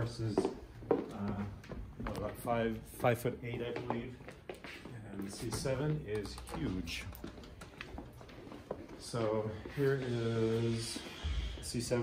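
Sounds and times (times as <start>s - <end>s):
footsteps on hardwood floor: 0.0s - 12.0s
room hum: 0.0s - 12.0s.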